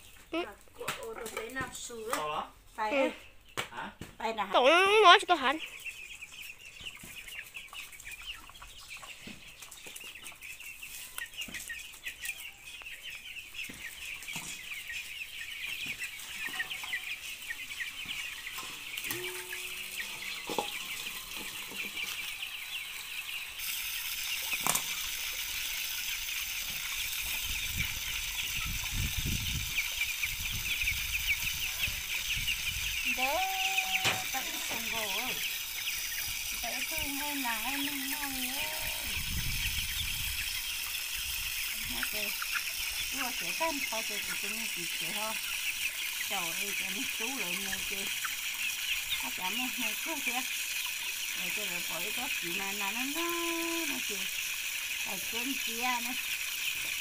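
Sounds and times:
chickens clucking: 0.0s - 57.0s
high chirping: 4.4s - 54.4s
water tap running: 23.6s - 27.3s.

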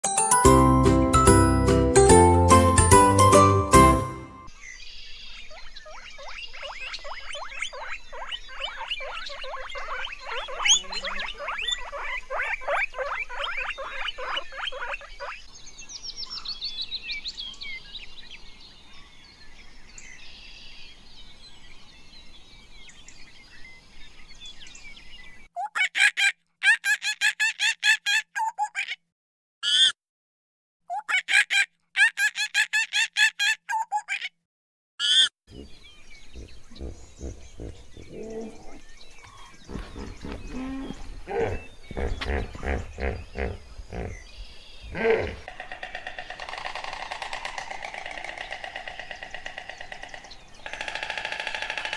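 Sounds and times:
guinea pigs squeaking: 5.6s - 15.4s
loud pitched calls: 6.6s - 15.3s, 44.9s - 51.9s.

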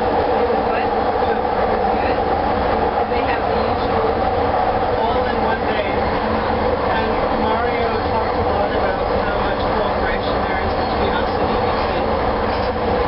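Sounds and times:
train car hum and rumble: 0.0s - 13.0s.

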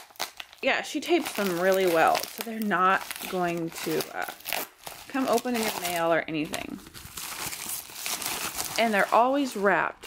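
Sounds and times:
plastic mailer bag crinkling: 0.0s - 10.0s.

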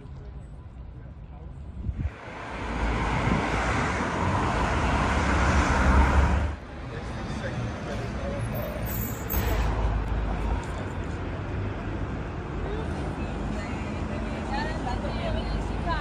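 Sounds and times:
steady traffic noise: 0.0s - 16.0s
vehicle passing: 2.0s - 8.6s.

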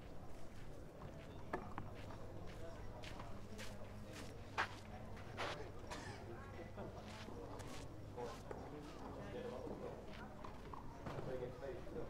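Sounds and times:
faint chatter of spectators: 0.0s - 12.0s.

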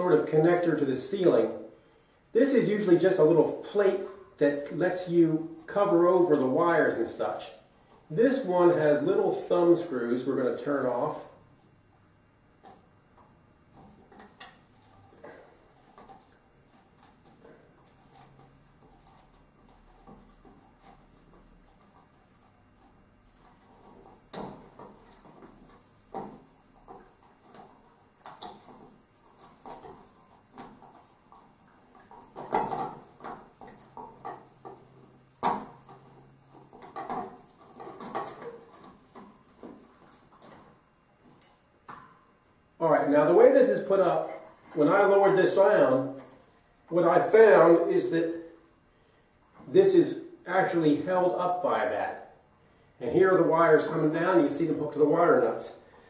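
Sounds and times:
clicks and scrapes of ceiling light: 12.6s - 42.2s, 44.2s - 46.9s
knocks and rattles: 13.7s - 42.2s.

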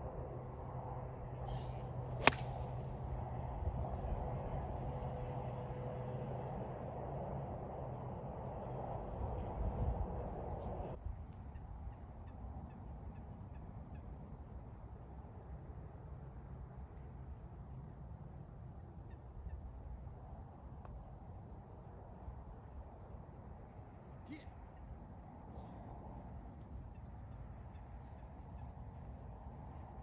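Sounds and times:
outdoor background noise: 0.0s - 30.0s
golf club striking ball: 2.2s - 2.8s.

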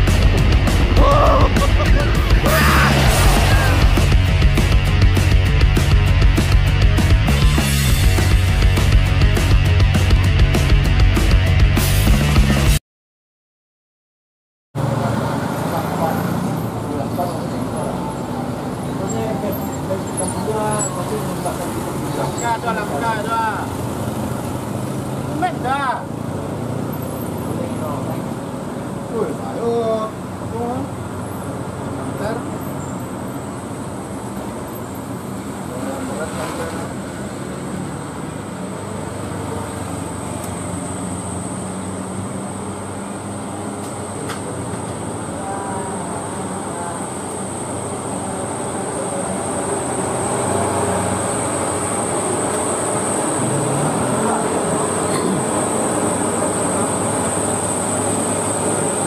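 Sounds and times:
vehicle engines under load: 0.0s - 6.7s, 14.8s - 59.0s.

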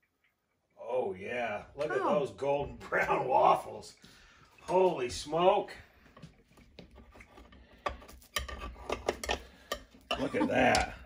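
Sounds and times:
utensil scraping waffle iron: 6.6s - 10.9s.

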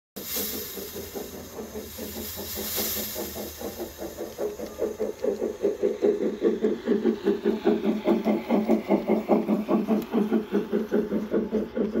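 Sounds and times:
model train rhythmic pulsing: 0.2s - 12.0s.

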